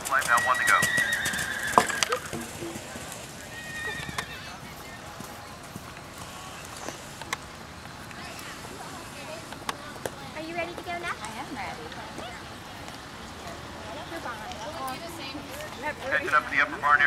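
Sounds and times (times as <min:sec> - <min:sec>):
hoofbeats of a canter: 0:00.0 - 0:09.6
horse whinnying: 0:00.2 - 0:04.5.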